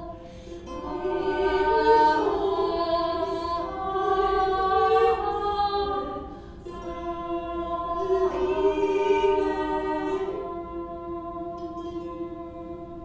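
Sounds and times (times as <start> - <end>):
women's voices singing in harmony: 0.0 - 13.0.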